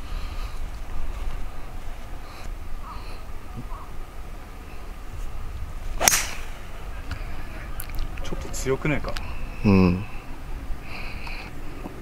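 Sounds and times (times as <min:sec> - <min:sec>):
golf club swishing: 0:05.9 - 0:06.8
golf ball struck sharp crack: 0:06.0 - 0:06.8.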